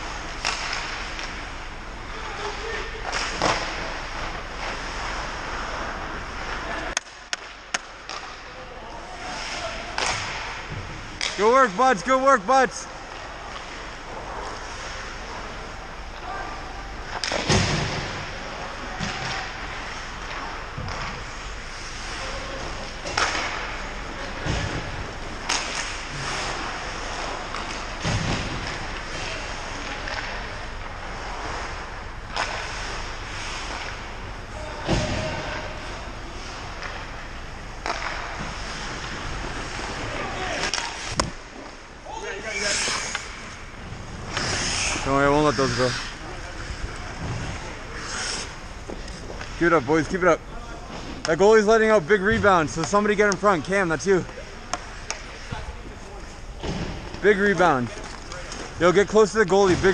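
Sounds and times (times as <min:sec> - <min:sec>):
faint players' voices: 0:39.3 - 0:59.9
skates scraping on ice: 0:44.1 - 0:49.8.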